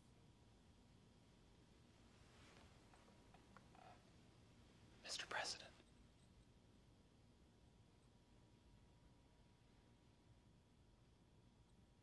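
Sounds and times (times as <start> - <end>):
person whispering: 5.0 - 5.8.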